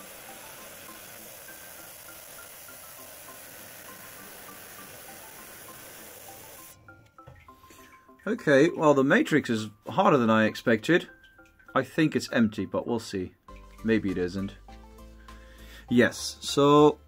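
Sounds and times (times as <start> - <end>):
faint background music: 0.0 - 17.0.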